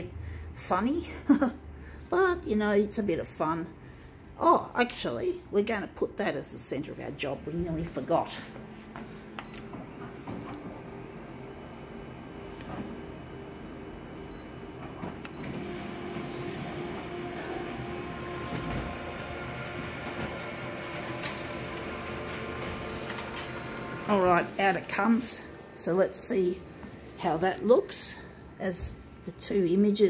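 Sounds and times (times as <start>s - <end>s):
photocopier running: 7.4s - 29.3s
photocopier clicks: 18.2s - 24.0s.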